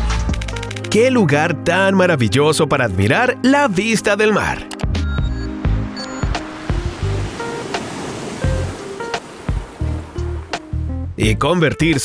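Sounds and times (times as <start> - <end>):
background music: 0.0 - 12.0
seawater rushing: 5.3 - 10.9.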